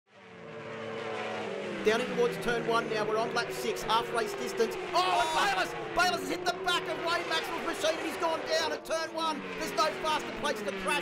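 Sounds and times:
racing motorcycles at speed: 0.1 - 11.0.

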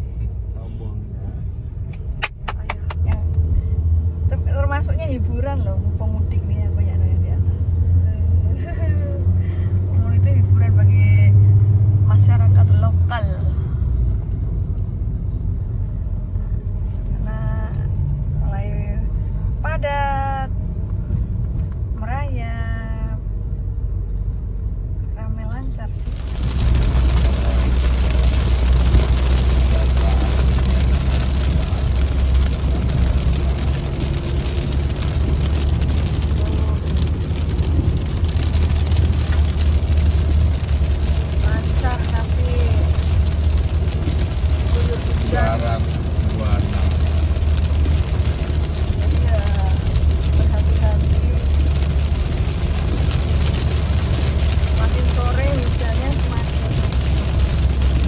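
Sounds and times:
rain hissing on windscreen and road: 0.0 - 14.1, 25.6 - 58.0
tyre and engine rumble: 0.9 - 58.0.

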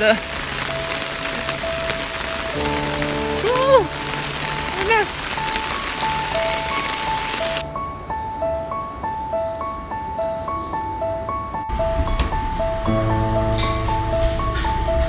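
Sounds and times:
heavy rain pouring: 0.0 - 7.7.

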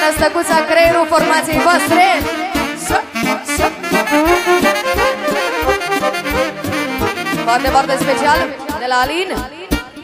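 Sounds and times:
live band playing party music: 0.0 - 10.0.

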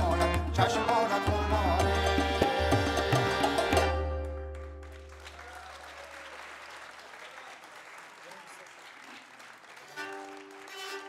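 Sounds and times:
audience applauding: 3.4 - 11.0.

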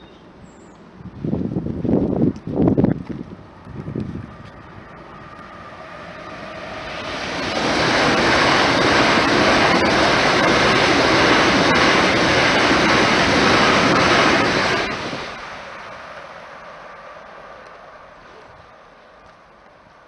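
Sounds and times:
train passing at speed: 0.0 - 20.0.

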